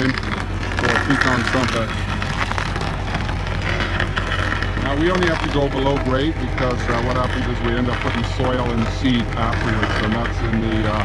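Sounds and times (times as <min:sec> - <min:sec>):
machine engine hum: 0:00.0 - 0:11.0
wood being shredded: 0:00.0 - 0:11.0.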